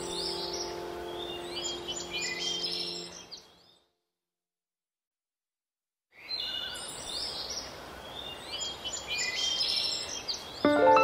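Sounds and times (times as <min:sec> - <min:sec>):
music with sustained notes: 0:00.0 - 0:03.4, 0:10.6 - 0:11.0
steady background hiss: 0:00.0 - 0:03.4
birds chirping: 0:00.0 - 0:03.9.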